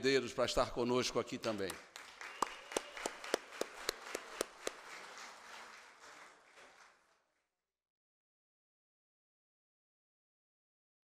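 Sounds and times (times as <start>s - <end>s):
scattered clapping: 1.4s - 7.2s
sharp hand claps close by: 1.6s - 6.9s.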